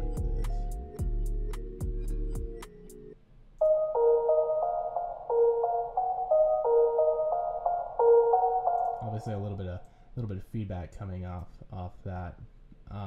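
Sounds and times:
soft synthesizer melody: 0.0s - 9.8s.

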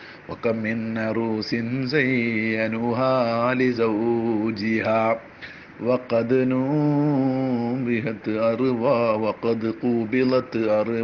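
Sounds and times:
man chanting: 0.3s - 11.0s.

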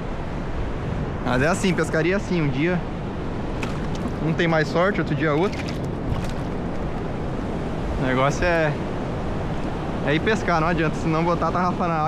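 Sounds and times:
wind buffeting microphone: 0.6s - 10.1s.

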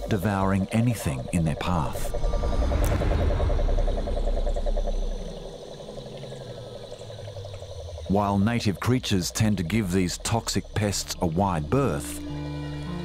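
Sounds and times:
toad trilling: 0.0s - 12.7s
low rumble: 1.1s - 6.8s.

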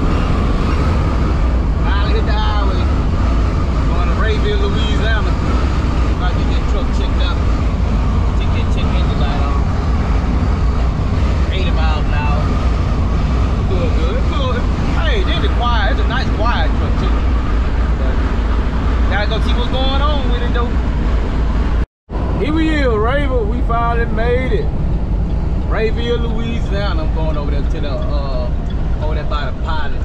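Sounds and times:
road noise: 0.0s - 30.0s
truck engine drone: 0.0s - 30.0s
man speaking: 1.8s - 3.0s, 3.9s - 5.5s, 6.1s - 7.5s, 8.3s - 9.7s, 11.5s - 12.5s, 13.7s - 17.2s, 19.1s - 20.7s, 22.4s - 24.7s, 25.7s - 30.0s.

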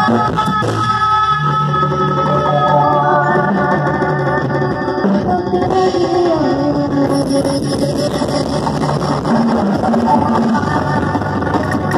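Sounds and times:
loud live band music: 0.0s - 11.9s
melody line over band: 0.0s - 11.9s.

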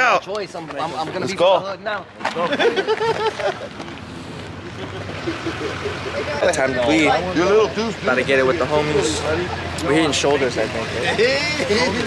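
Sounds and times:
men talking indistinctly: 0.0s - 2.9s, 6.1s - 12.0s
steady background noise: 0.0s - 12.0s.

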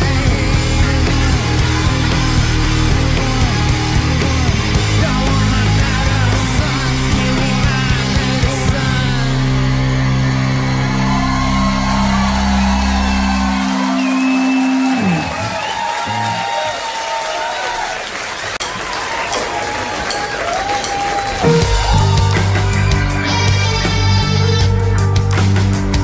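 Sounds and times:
rock band final chord: 0.0s - 16.4s, 21.2s - 26.0s
audience cheering and whooping: 0.0s - 24.0s.

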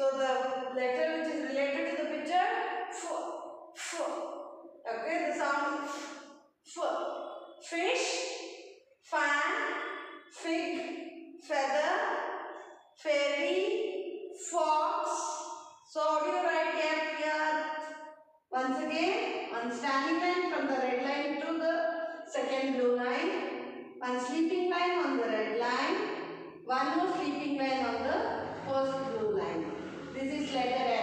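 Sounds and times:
woman speaking: 0.0s - 3.2s, 3.8s - 4.3s, 4.9s - 6.1s, 6.7s - 7.0s, 7.6s - 8.2s, 9.1s - 9.7s, 10.4s - 10.9s, 11.5s - 12.2s, 13.0s - 13.8s, 14.4s - 17.6s, 18.6s - 23.4s, 24.0s - 26.0s, 26.7s - 31.0s.

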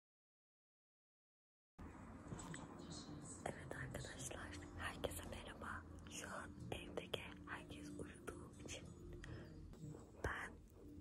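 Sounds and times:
faint low hum: 1.8s - 11.0s
woman whispering: 2.4s - 10.7s.

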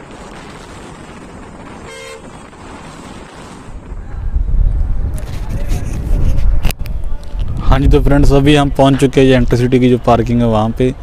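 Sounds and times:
road traffic: 0.0s - 11.0s
wind buffeting microphone: 0.0s - 11.0s
vehicle horn toot: 1.8s - 2.3s.

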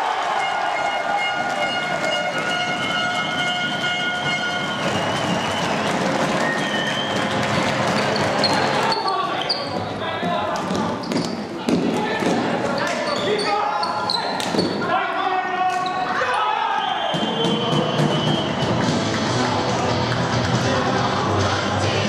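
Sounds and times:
players shouting: 11.6s - 18.6s.

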